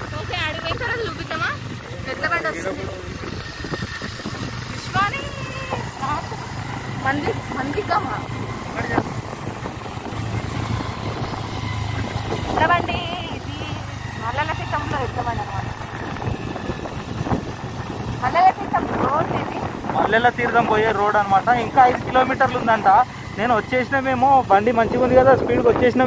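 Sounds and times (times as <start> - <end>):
people talking: 0.0 - 3.4, 4.8 - 6.4, 7.0 - 9.1, 12.5 - 15.8, 18.2 - 26.0
motorcycle engine humming: 0.0 - 26.0.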